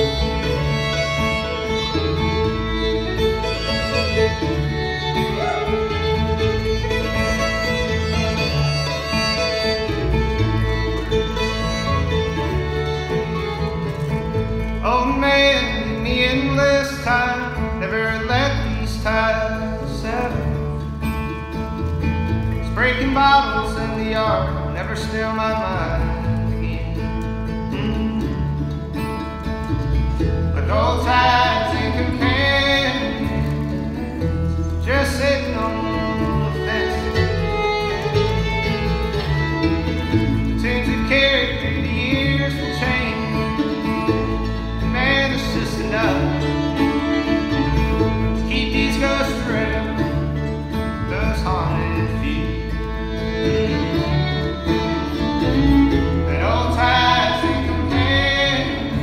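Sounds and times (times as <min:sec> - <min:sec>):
fiddle: 0:00.0 - 0:59.0
mandolin: 0:00.0 - 0:59.0
upright bass: 0:00.0 - 0:59.0.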